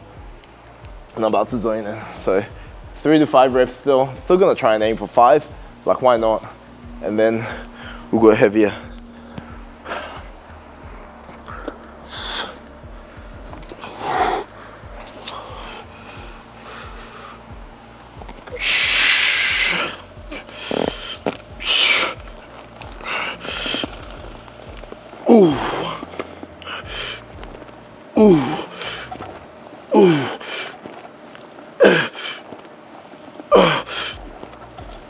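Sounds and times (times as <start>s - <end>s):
man breathing forcefully: 7.4s - 8.1s, 8.8s - 27.6s, 28.2s - 31.0s, 31.8s - 32.7s, 33.5s - 35.0s.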